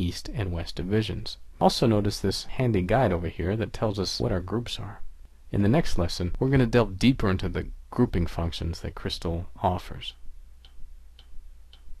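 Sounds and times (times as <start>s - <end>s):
low steady hum: 0.0s - 12.0s
faint ticks: 10.1s - 12.0s.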